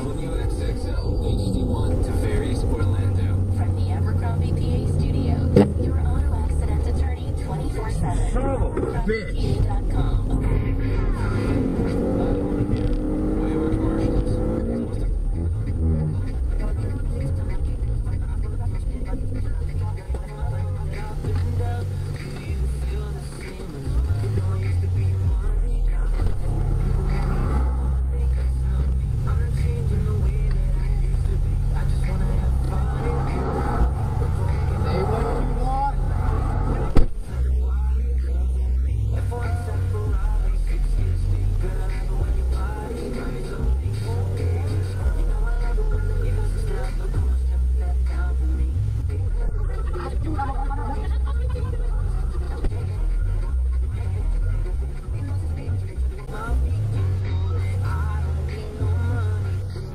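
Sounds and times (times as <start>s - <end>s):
background music: 0.0s - 59.9s
indistinct voices: 0.0s - 59.9s
road traffic rumble: 0.0s - 59.9s.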